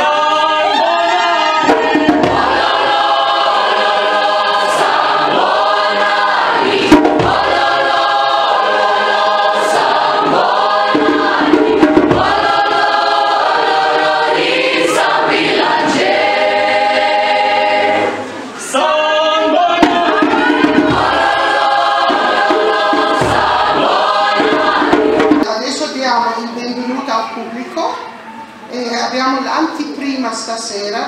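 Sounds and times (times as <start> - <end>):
choir singing unaccompanied: 0.0 - 26.0.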